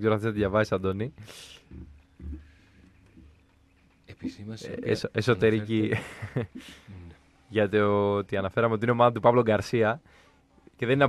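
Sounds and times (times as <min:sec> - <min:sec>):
man chuckling quietly: 0:05.8 - 0:07.1.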